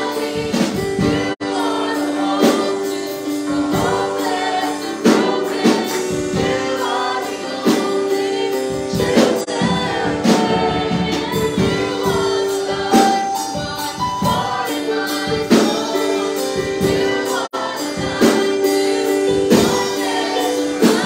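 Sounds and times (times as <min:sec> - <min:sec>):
band with drum kit: 0:00.0 - 0:21.0
woman singing through microphone: 0:03.8 - 0:21.0.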